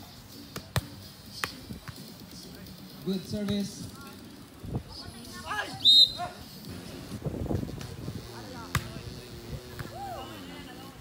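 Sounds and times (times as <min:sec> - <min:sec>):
volleyball slaps: 0:08.6 - 0:09.0
loud shout: 0:09.9 - 0:10.4.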